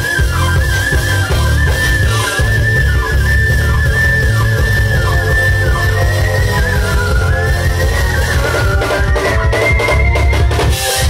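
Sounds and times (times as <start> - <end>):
band playing: 0.0 - 11.0
heavy bass line: 0.0 - 11.0
synthesizer lead solo: 0.0 - 11.0.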